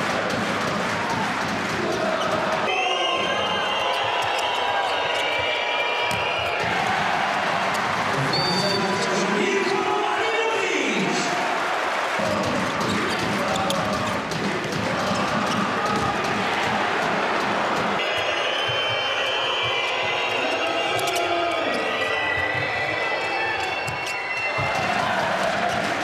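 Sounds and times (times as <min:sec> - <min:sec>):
arena crowd noise: 0:00.0 - 0:26.0
ball bouncing on court floor: 0:12.2 - 0:18.1
shoes squeaking on court: 0:12.7 - 0:14.2.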